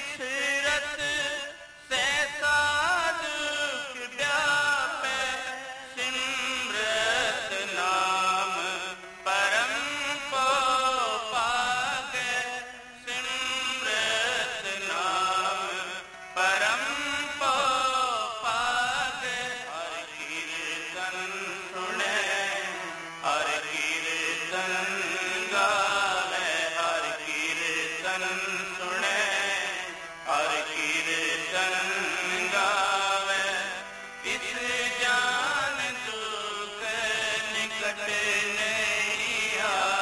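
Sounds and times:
harmonium: 0.0 - 40.0
man singing: 0.0 - 40.0
tabla: 0.0 - 40.0.

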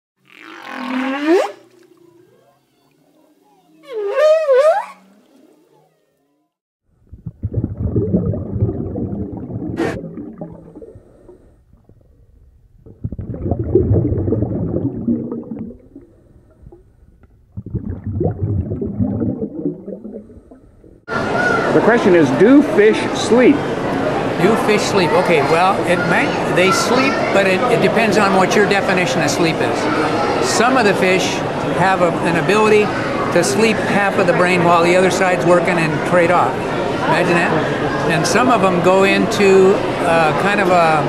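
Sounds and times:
whale-like calls: 0.3 - 6.5.

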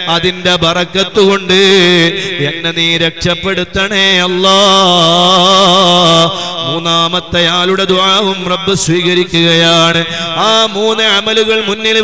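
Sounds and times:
man chanting over loudspeaker: 0.0 - 12.0.

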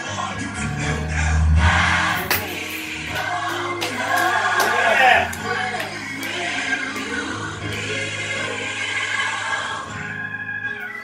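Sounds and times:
gospel choir over loudspeaker: 0.0 - 11.0.

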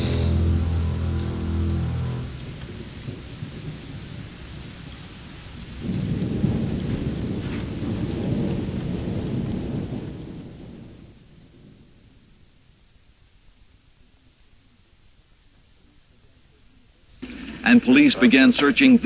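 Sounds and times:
held music chord: 0.0 - 3.1
low rolling rumble: 0.0 - 4.6
steady hiss like rain: 0.0 - 19.0.

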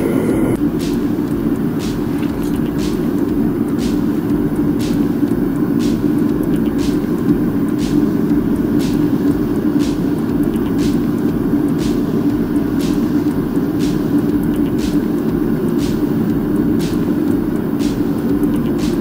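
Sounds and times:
furnace burner roaring: 0.0 - 19.0
light ticks: 0.6 - 19.0.

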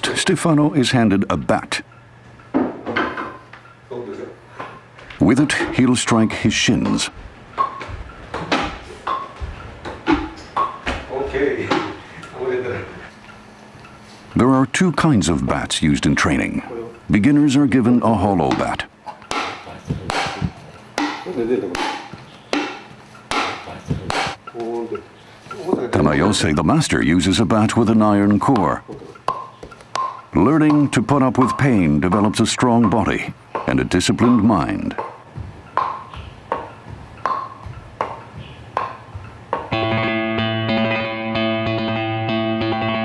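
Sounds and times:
wooden bat knocking on shins: 18.5 - 24.4, 28.3 - 39.8.

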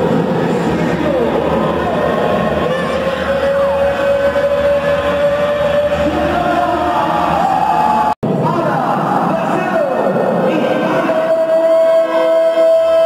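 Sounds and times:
crowd noise in hall: 0.0 - 13.0.

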